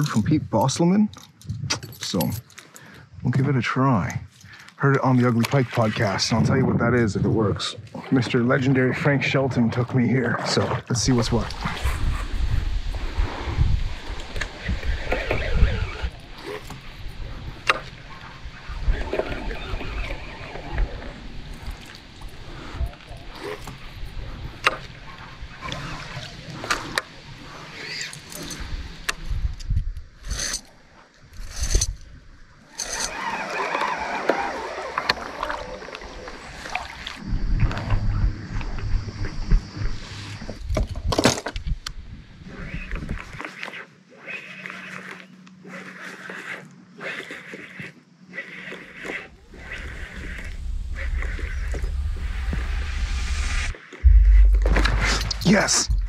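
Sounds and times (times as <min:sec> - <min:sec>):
wind rumbling on microphone: 0:01.4 - 0:02.5, 0:05.4 - 0:32.6, 0:35.2 - 0:43.4, 0:49.3 - 0:56.0
water against hull: 0:11.1 - 0:29.4, 0:32.8 - 0:41.2, 0:44.4 - 0:56.0.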